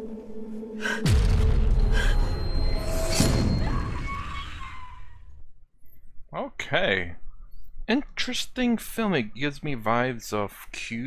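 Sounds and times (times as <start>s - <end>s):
low rumble: 0.0s - 4.2s.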